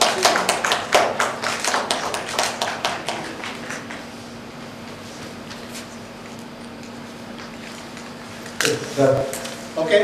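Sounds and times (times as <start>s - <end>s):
small audience applauding: 0.0s - 4.0s.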